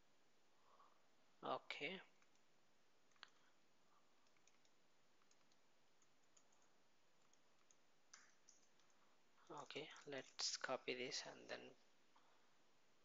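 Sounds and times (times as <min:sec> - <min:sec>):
computer mouse clicks: 0:02.2 - 0:02.5, 0:04.2 - 0:09.0.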